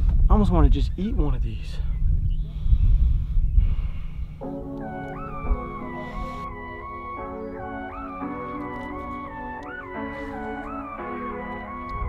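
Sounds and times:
wind rumble on microphone: 0:00.0 - 0:04.4
man breathing out through nose: 0:02.5 - 0:04.5, 0:05.8 - 0:06.6, 0:09.9 - 0:10.9.

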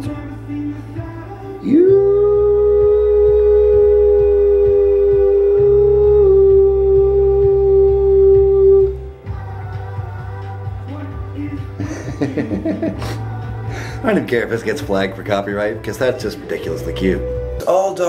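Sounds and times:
music playing: 0:00.0 - 0:18.0
person holding long sung note: 0:01.6 - 0:09.0.

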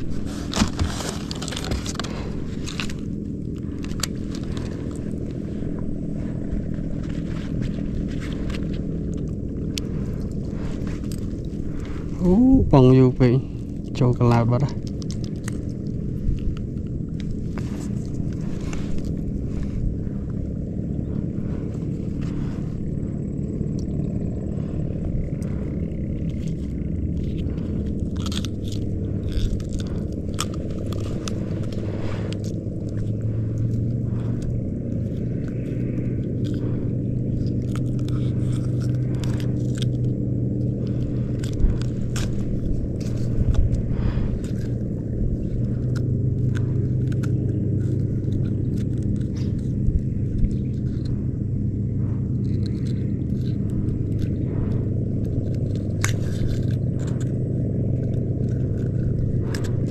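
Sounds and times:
boat engine humming: 0:00.0 - 0:59.9
gear clicking and scraping: 0:00.0 - 0:59.9.

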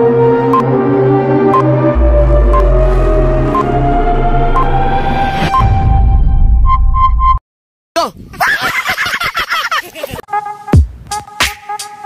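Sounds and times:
man laughing: 0:08.3 - 0:10.3.

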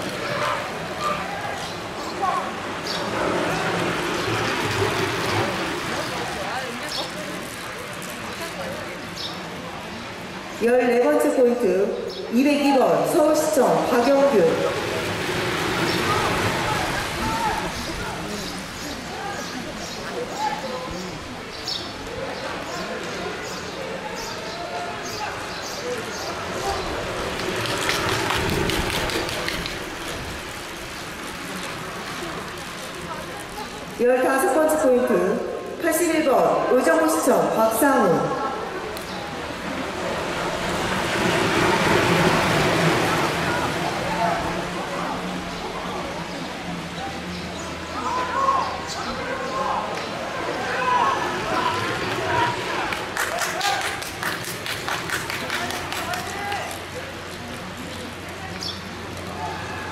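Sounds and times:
outdoor background noise: 0:00.0 - 0:59.9
racing bicycles passing close: 0:00.0 - 0:59.9.

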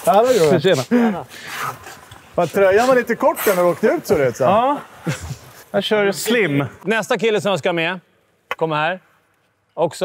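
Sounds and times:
man talking: 0:00.0 - 0:01.3, 0:02.4 - 0:09.0.

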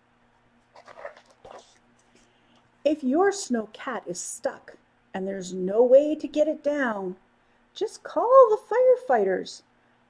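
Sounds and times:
faint steady hum: 0:00.0 - 0:10.0
book pages turning: 0:00.6 - 0:02.3.

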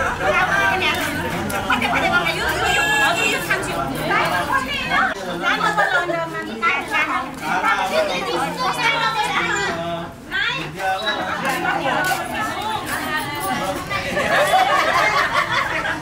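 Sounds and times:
overlapping chatter: 0:00.0 - 0:16.0.

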